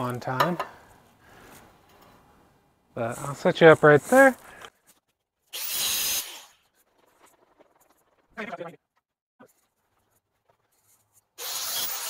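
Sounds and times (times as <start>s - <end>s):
angle grinder running: 11.4s - 12.0s.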